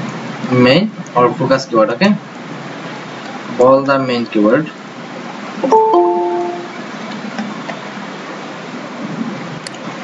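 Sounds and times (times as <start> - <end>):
two-note notification chime: 5.6 - 6.8.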